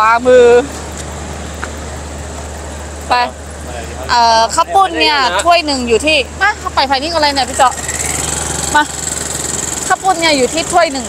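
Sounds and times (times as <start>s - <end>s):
small motorcycle engine running: 0.0s - 11.0s.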